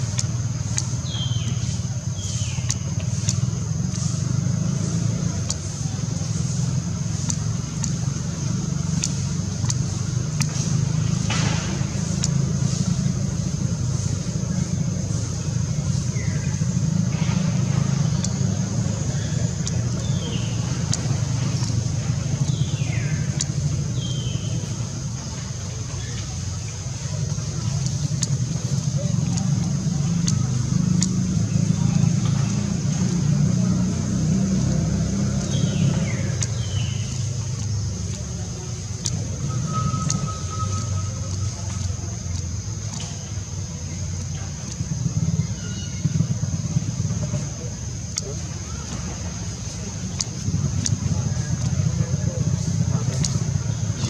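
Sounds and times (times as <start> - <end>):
whistle-like tone: 39.5 - 41.6.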